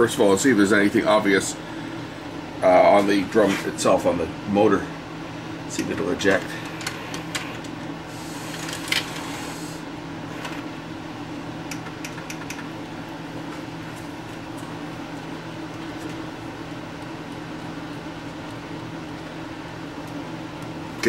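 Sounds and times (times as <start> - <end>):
tape mechanism humming: 0.0 - 21.0.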